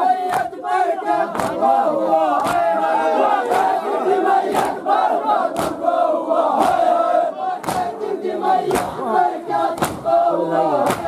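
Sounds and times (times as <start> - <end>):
men chanting together: 0.0 - 11.0
chest-beating slaps: 1.3 - 1.6, 2.4 - 2.7, 4.5 - 4.8, 5.5 - 5.8, 6.6 - 6.9, 7.6 - 8.0, 8.7 - 9.0, 9.7 - 10.1, 10.8 - 11.0.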